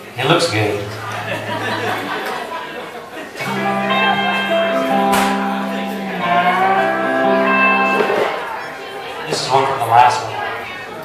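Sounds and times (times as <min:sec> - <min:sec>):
band playing: 0:00.0 - 0:11.0
guitar chord ringing: 0:00.4 - 0:11.0.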